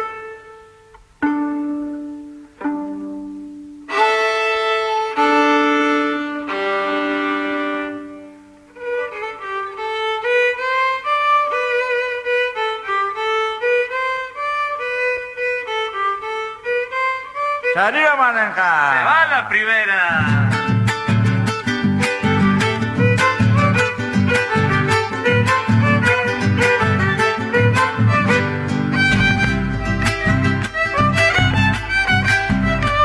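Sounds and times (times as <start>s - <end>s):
violin melody with vibrato: 0.0s - 18.0s, 20.5s - 33.0s
violin being tuned: 0.0s - 18.4s, 20.2s - 33.0s.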